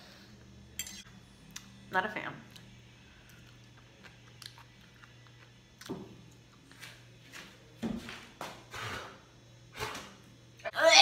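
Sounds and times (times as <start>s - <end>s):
person chewing food: 3.3s - 5.9s.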